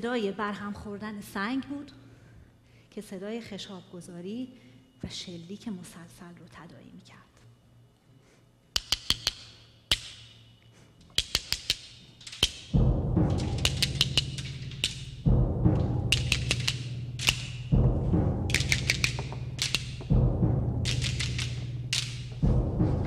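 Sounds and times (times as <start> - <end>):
stones clicking together: 11.1 - 12.7, 16.1 - 17.5, 18.5 - 20.1, 20.9 - 22.2
low drum roll: 12.7 - 23.0.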